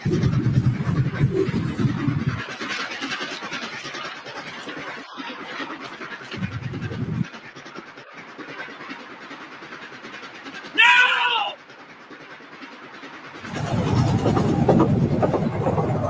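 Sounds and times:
steam locomotive chugging: 0.0 - 16.0
man yelling: 10.8 - 11.6.

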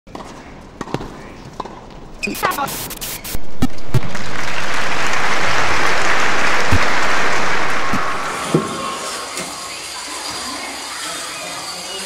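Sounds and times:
low crowd hubbub: 3.5 - 12.0.

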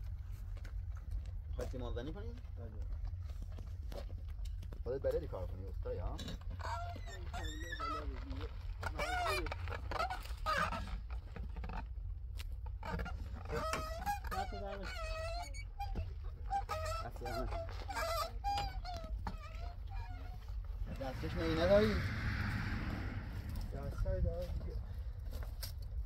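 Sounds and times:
steady low rumble: 20.5 - 26.0
people talking indistinctly: 20.8 - 24.9.

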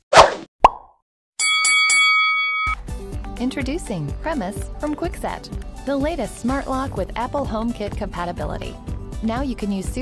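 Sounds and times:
bright electronic chime notes: 1.4 - 2.8.

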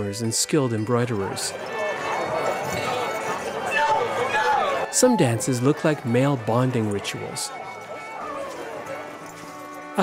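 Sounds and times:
folk dance music with held notes: 0.0 - 10.0.

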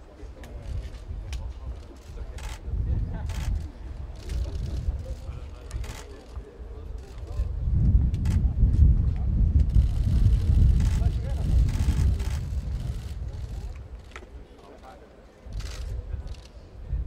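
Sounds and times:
wind buffeting microphone: 0.3 - 14.2, 15.5 - 17.0.

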